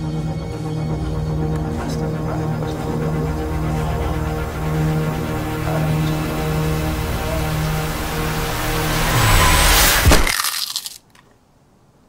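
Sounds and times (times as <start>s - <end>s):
rising noise swell: 0.0s - 10.2s
tense film score: 0.0s - 10.3s
sharp hit: 4.5s - 10.8s.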